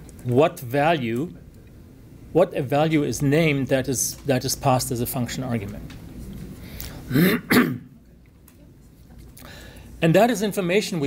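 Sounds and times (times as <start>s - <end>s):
man clearing his throat: 7.1s - 7.9s.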